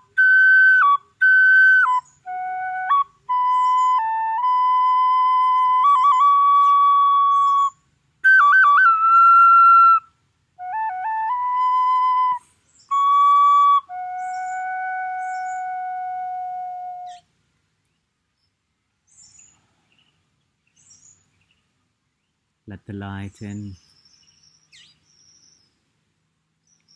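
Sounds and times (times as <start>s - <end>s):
wooden flute playing: 0.0s - 17.3s.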